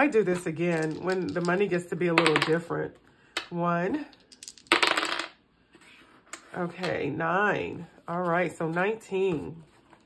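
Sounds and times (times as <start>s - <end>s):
dice clattering on tabletop: 0.3s - 2.7s, 4.1s - 5.4s.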